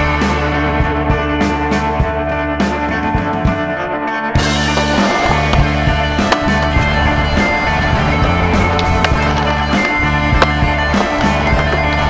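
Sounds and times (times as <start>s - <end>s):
music with steady beat: 0.0s - 12.0s
skateboard sliding on metal rail: 4.4s - 12.0s
skateboard wheels rolling on concrete: 4.4s - 12.0s.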